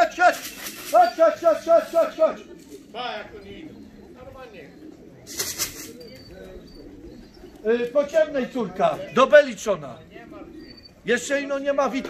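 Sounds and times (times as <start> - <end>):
pigeons cooing: 0.0 - 12.0
wing flaps: 0.2 - 2.8, 5.3 - 6.2.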